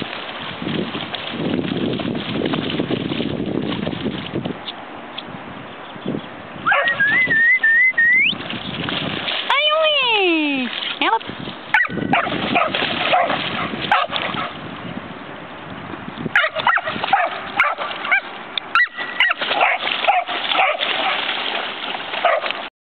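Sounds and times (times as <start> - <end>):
splashing through shallow water: 0.0 - 5.6, 6.4 - 22.7.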